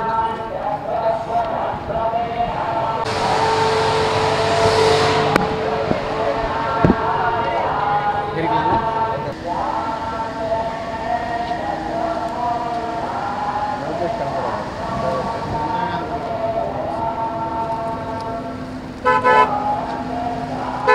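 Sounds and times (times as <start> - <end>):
voices with held notes: 0.0 - 20.9
car horn toot: 3.0 - 9.0, 19.0 - 19.7.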